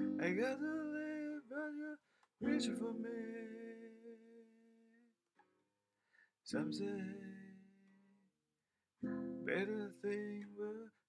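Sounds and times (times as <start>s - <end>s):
faint guitar pluck: 0.0s - 1.0s.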